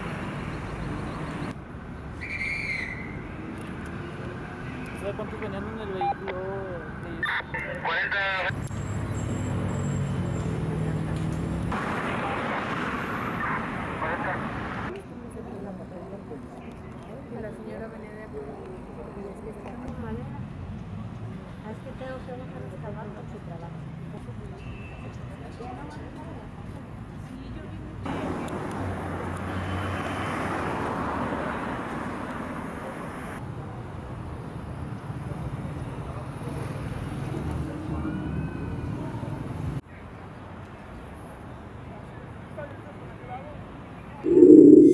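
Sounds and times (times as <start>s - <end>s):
passing vehicles: 0.0s - 39.8s
traffic noise: 0.0s - 44.9s
indistinct voices: 44.2s - 44.9s.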